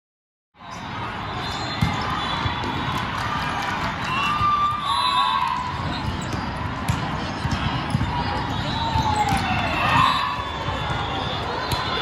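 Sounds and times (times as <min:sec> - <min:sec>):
volleyballs being hit and bouncing: 0:01.8 - 0:12.0.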